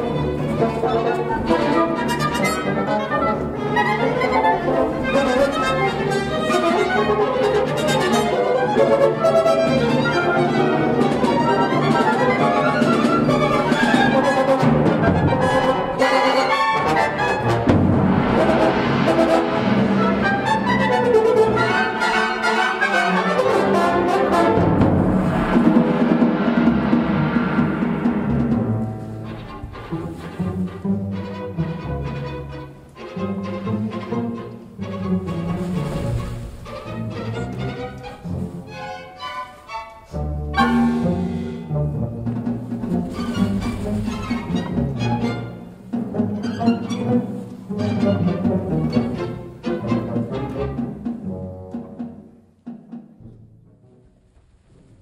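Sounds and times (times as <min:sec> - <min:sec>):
brass: 0:00.0 - 0:52.4
orchestral music: 0:00.0 - 0:54.4
timpani: 0:00.0 - 0:55.0.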